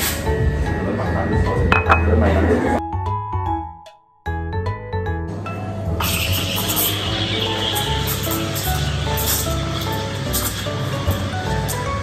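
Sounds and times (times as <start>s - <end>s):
background music: 0.0s - 12.0s
busy cafe background noise: 0.8s - 2.8s, 5.4s - 12.0s
ceramic cup clinking: 1.7s - 2.3s.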